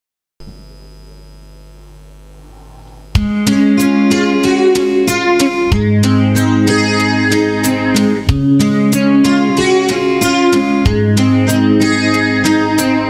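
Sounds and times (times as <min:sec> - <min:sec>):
electrical hum: 0:00.4 - 0:05.0
acoustic-electric guitar chords: 0:00.4 - 0:13.0.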